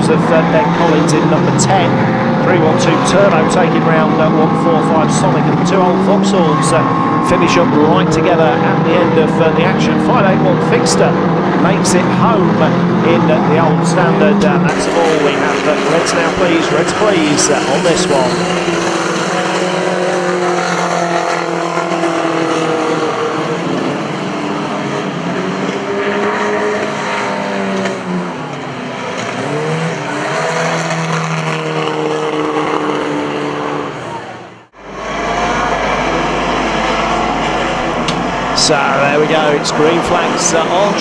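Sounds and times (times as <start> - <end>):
racing car engines revving: 0.0 - 41.0.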